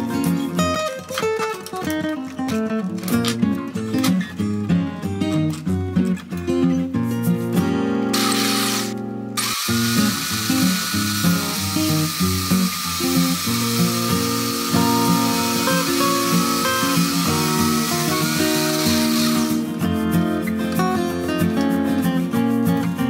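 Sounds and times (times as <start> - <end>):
acoustic guitar music: 0.0 - 23.0
electric drill motor whining: 8.2 - 19.6.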